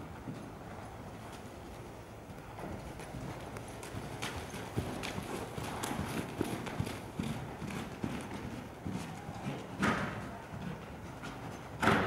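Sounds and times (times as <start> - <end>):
horse hoofbeats on soft ground: 0.0 - 12.0.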